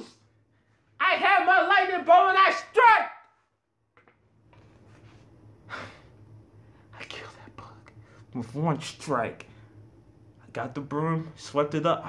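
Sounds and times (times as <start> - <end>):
faint low hum: 0.0 - 12.0
man whispering: 6.9 - 8.5.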